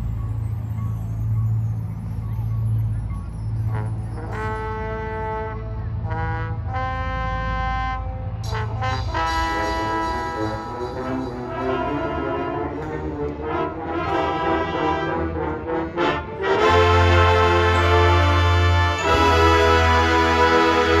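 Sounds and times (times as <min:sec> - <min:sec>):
marching band brass playing: 0:03.7 - 0:21.0.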